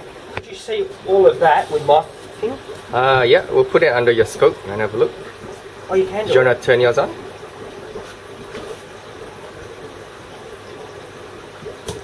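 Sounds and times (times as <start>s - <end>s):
steady hum and hiss: 0.0s - 12.0s.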